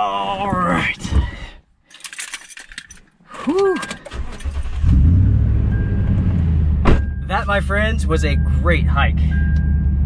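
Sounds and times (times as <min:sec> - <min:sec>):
truck engine starting and idling: 0:03.9 - 0:10.0.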